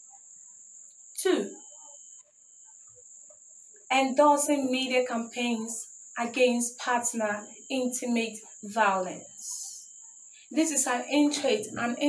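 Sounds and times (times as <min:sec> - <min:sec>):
crickets trilling: 0:00.0 - 0:12.0
woman speaking: 0:01.2 - 0:01.6, 0:03.9 - 0:09.8, 0:10.5 - 0:12.0.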